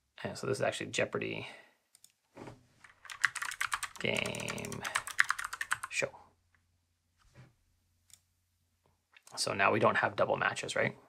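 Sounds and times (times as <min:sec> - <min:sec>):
rapid typing on keyboard: 0:02.8 - 0:05.9.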